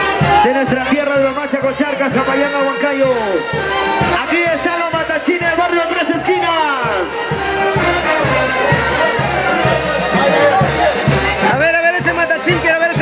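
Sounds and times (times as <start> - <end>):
crowd voices: 0.0 - 13.0
horns playing dance music: 0.0 - 13.0
steady low beat: 3.3 - 11.6.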